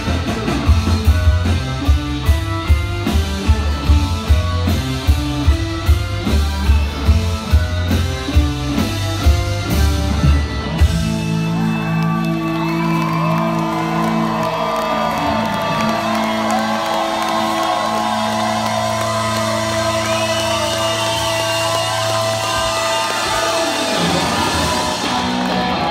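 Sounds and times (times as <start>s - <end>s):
crowd whooping and cheering: 0.9s - 25.9s.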